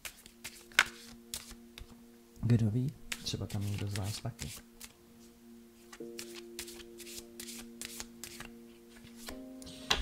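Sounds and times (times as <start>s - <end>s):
cards being shuffled: 0.0s - 2.0s, 3.1s - 5.0s, 5.8s - 10.0s.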